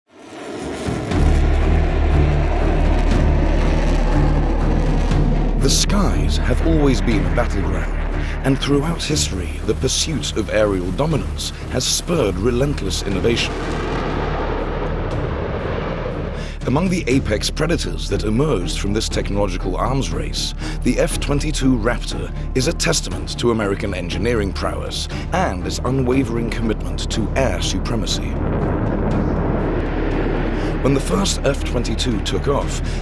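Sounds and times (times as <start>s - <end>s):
jet engine roar: 0.1s - 16.6s, 28.2s - 33.0s
deep low drone: 0.1s - 20.9s, 23.9s - 33.0s.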